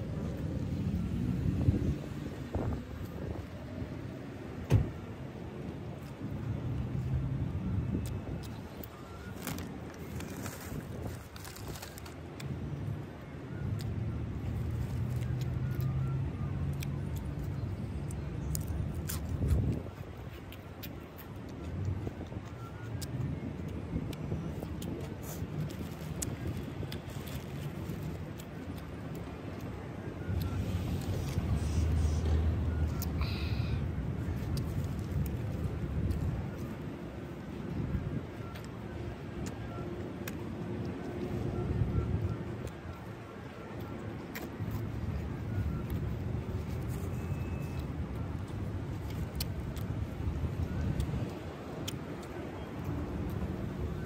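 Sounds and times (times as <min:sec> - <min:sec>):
chewing and mouth sounds: 0:05.2 - 0:54.0
car engines humming: 0:22.6 - 0:54.0.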